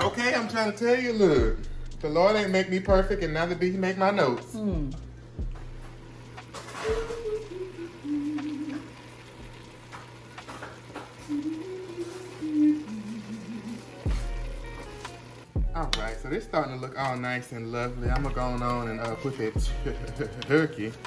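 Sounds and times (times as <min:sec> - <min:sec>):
person humming a slow tune: 0:04.5 - 0:05.6, 0:06.7 - 0:09.2, 0:11.2 - 0:14.6
vegetables sizzling in a pot: 0:05.6 - 0:21.0.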